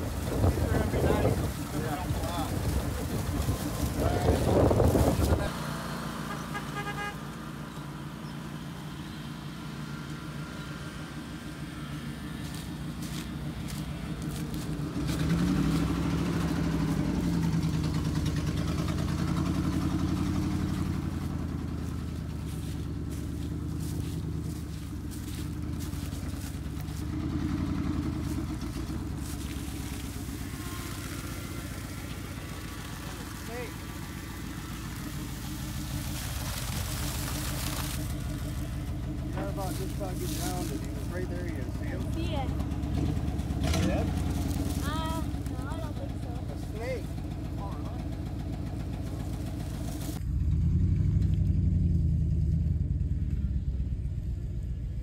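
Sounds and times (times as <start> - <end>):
vehicle engine revving: 0.0 - 55.0.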